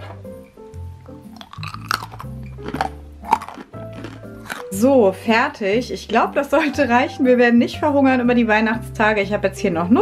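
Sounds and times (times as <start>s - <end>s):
background music: 0.0s - 10.0s
person chewing crunchy nut: 1.1s - 4.8s.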